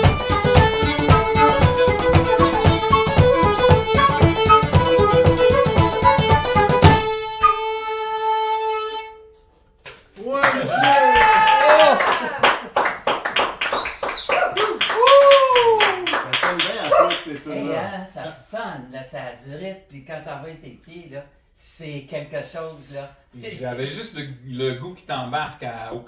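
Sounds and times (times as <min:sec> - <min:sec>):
hand clapping: 0:00.0 - 0:07.1, 0:09.9 - 0:17.6
fiddle and flute note: 0:00.0 - 0:09.4
whoops and cheers: 0:10.4 - 0:12.5, 0:14.0 - 0:16.3
voices: 0:15.4 - 0:18.8.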